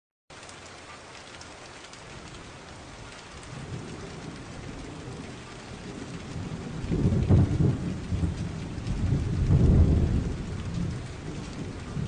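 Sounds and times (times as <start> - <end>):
rain hiss: 0.3 - 12.0
thunder rumble: 2.9 - 12.0.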